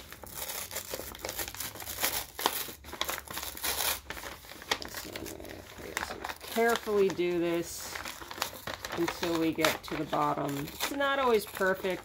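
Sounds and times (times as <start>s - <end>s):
paper bag crinkling: 0.0s - 12.0s.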